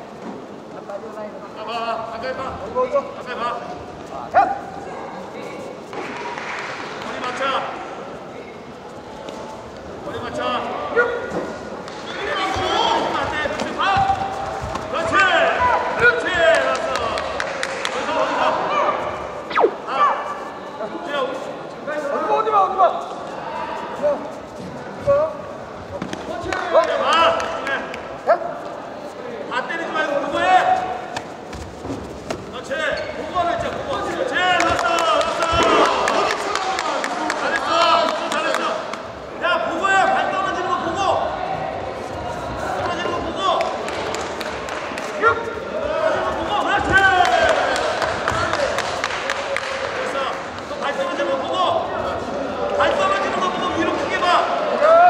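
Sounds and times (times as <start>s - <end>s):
murmur of sports hall: 0.0s - 55.0s.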